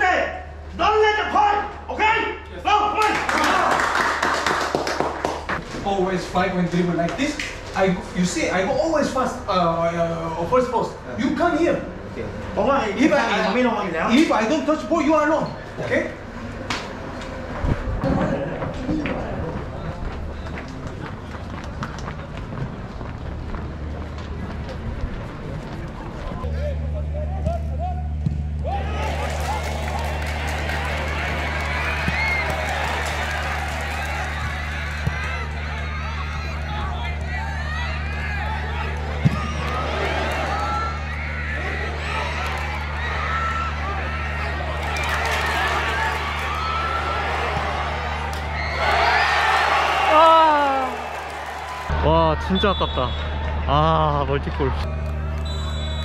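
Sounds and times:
crowd shouting and chanting: 26.4 - 56.0.

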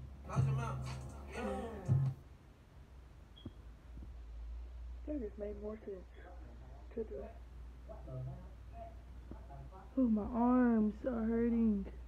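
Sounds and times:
steady low hum: 0.0 - 12.0
voice trailing off: 0.3 - 2.1.

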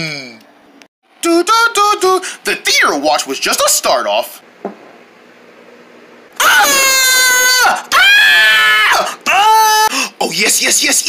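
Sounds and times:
person screaming in high voice: 6.4 - 9.9.

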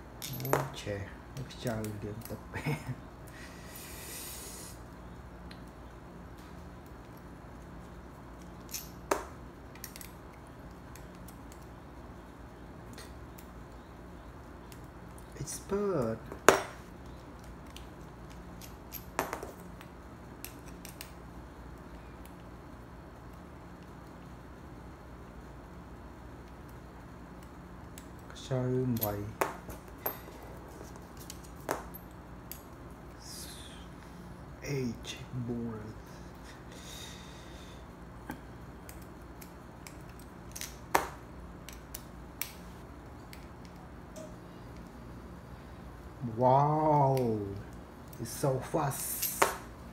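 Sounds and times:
faint low hum: 0.0 - 49.9
small metal parts clicking: 0.2 - 0.8, 8.4 - 9.1, 9.7 - 11.8, 17.0 - 21.2, 28.9 - 32.8, 38.8 - 40.9, 41.6 - 42.6, 49.0 - 49.6.

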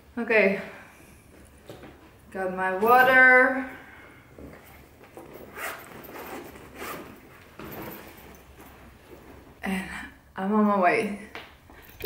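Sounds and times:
cloth rustling: 4.2 - 9.6
zipper strokes: 4.5 - 9.6.

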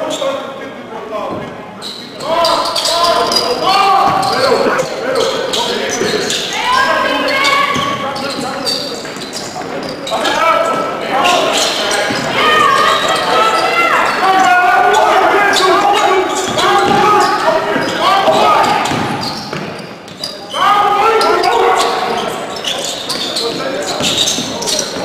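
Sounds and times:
voices echoing in hall: 0.0 - 25.0.

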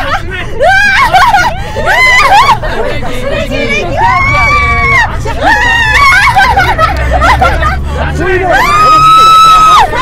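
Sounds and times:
car engine humming: 0.0 - 10.0
woman screaming and yelling: 8.5 - 10.0.

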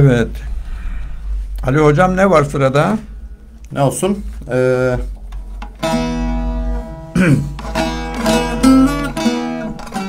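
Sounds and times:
long-necked lute picked notes: 4.3 - 10.0.

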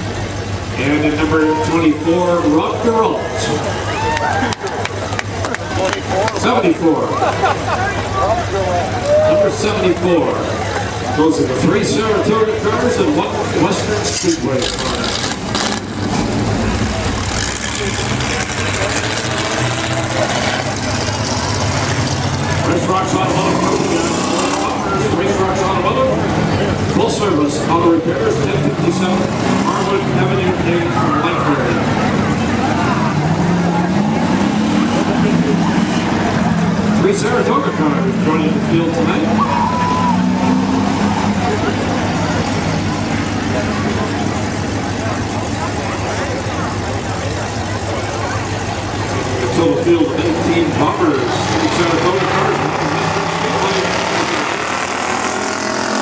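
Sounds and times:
car engines idling: 0.0 - 56.0
announcer's voice: 26.9 - 32.0, 36.9 - 41.6, 49.5 - 54.6.

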